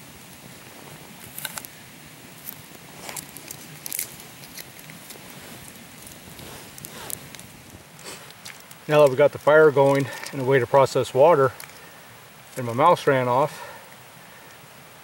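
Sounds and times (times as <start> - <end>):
campfire crackling and popping: 0.0 - 15.0.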